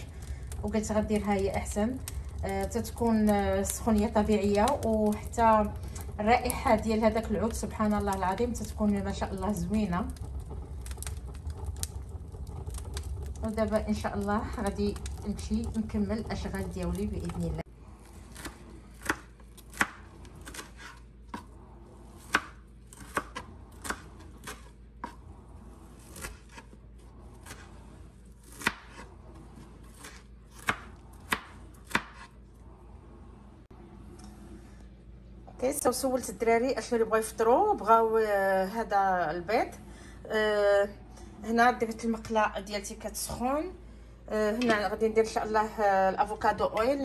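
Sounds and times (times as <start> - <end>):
wood fire crackling and popping: 0.0 - 32.7
low fire rumble: 0.0 - 47.0
knife chopping on plastic board: 18.3 - 21.5, 28.5 - 29.1, 30.0 - 32.3.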